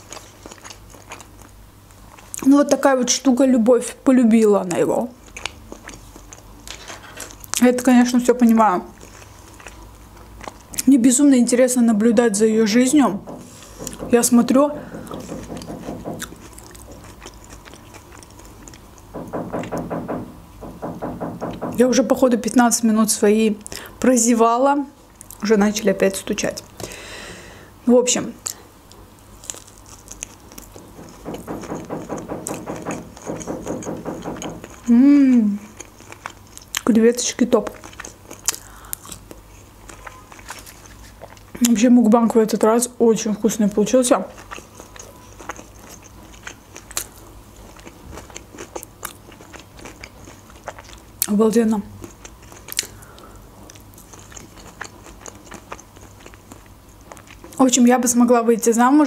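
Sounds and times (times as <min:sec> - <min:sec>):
person chewing with wet clicks: 0:00.0 - 0:02.8, 0:04.7 - 0:11.0, 0:15.1 - 0:19.1, 0:25.1 - 0:25.4, 0:28.4 - 0:41.8, 0:44.2 - 0:51.4, 0:52.0 - 0:57.6
muffled knocking through wall: 0:13.1 - 0:16.4, 0:19.1 - 0:22.0, 0:30.8 - 0:34.8.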